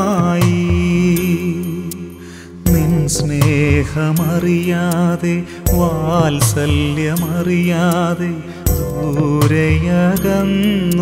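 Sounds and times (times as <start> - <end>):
devotional song: 0.0 - 11.0.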